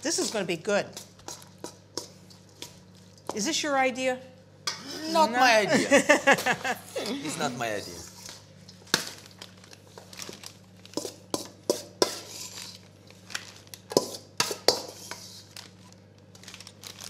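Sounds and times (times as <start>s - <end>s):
plastic bag crinkling: 9.1s - 11.0s, 13.1s - 13.9s, 15.4s - 17.0s.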